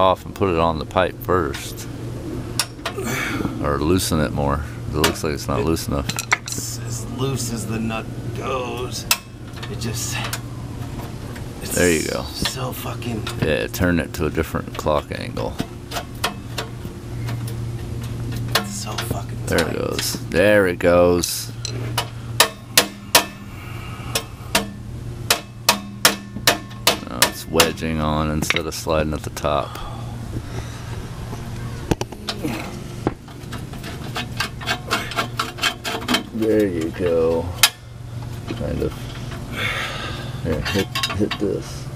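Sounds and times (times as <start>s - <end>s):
steady low hum: 0.0s - 41.9s
sharp knocks on metal pipe: 22.4s - 23.5s, 24.5s - 27.8s.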